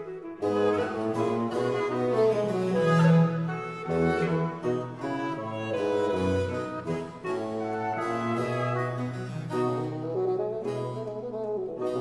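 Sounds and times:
baroque chamber music: 0.0s - 12.0s.

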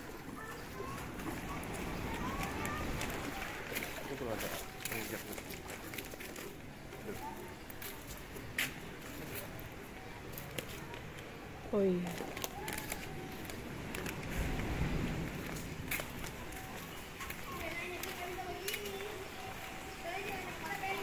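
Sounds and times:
distant indistinct voices: 0.0s - 21.0s
outdoor background noise: 0.0s - 21.0s.

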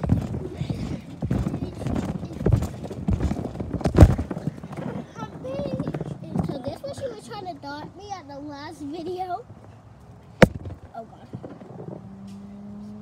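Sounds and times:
phone being handled thumps: 10.4s - 10.9s.

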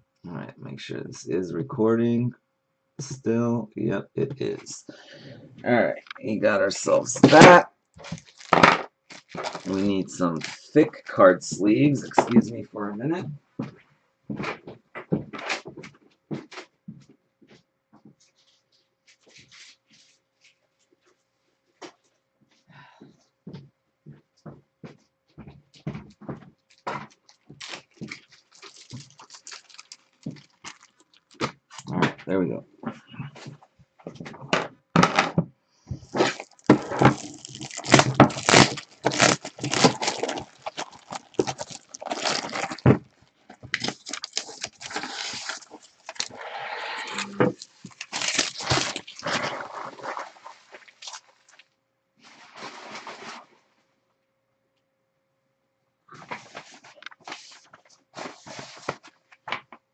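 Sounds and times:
plastic wrap crinkling: 6.1s - 11.2s, 26.6s - 31.9s, 36.1s - 46.4s, 47.1s - 51.7s.

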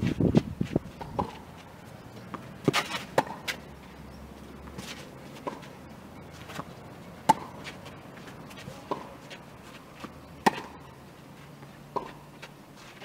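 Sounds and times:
footsteps on clay court: 0.0s - 13.0s
rackets hitting tennis ball: 0.9s - 1.5s, 2.2s - 3.8s, 4.4s - 11.0s, 11.6s - 13.0s
tennis ball bouncing: 0.9s - 12.6s.

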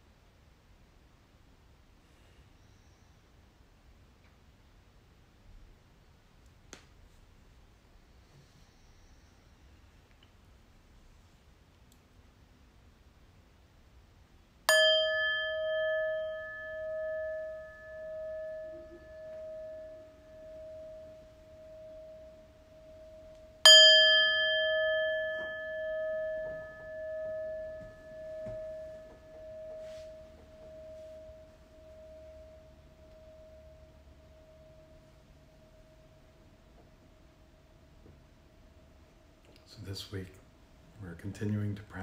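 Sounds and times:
singing bowl struck with mallet: 14.7s - 37.0s.

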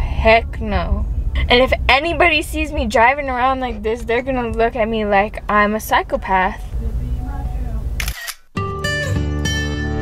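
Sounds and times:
car cabin hum: 0.0s - 8.0s
acoustic guitar music: 0.0s - 10.0s
phone camera shutter click: 8.0s - 8.5s.

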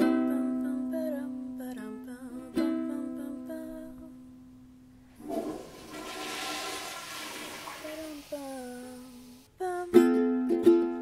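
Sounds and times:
ukulele chord: 0.0s - 4.1s, 9.6s - 11.0s
toilet flushing: 5.1s - 9.4s.

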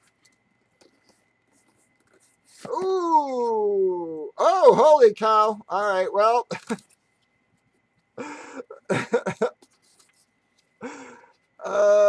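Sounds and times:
man's long exclamation: 2.7s - 5.0s, 11.6s - 12.0s.

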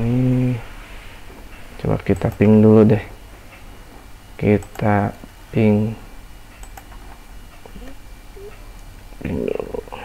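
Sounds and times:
man humming or grunting: 9.2s - 10.0s.

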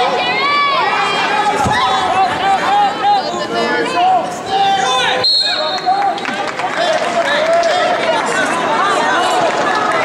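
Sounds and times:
people shouting: 0.0s - 5.2s.

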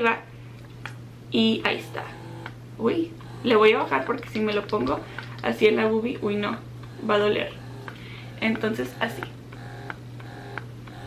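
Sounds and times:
steady low hum: 0.0s - 11.0s
breast pump motor pulsing: 1.4s - 11.0s.

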